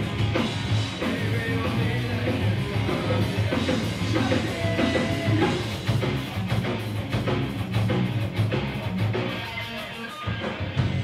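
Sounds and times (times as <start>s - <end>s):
bass guitar: 0.0s - 11.0s
distorted electric guitar: 0.0s - 11.0s
drum kit: 0.0s - 11.0s.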